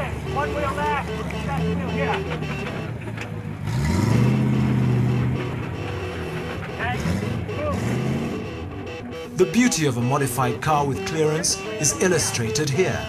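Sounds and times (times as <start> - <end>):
rally car engine revving: 0.0 - 13.0.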